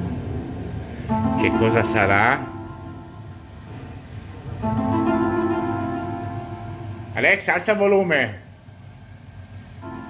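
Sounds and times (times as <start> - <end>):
synth chord: 1.0 - 7.5, 9.8 - 10.0.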